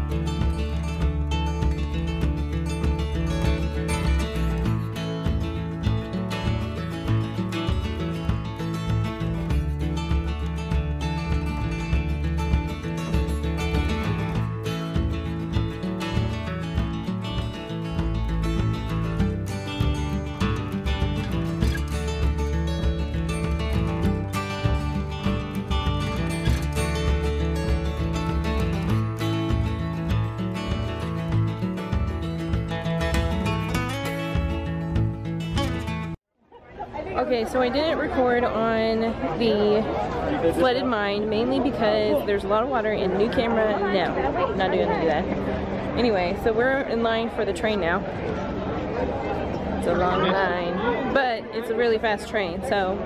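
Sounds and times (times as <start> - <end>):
background music with plucked guitar: 0.0 - 36.2, 37.1 - 53.0.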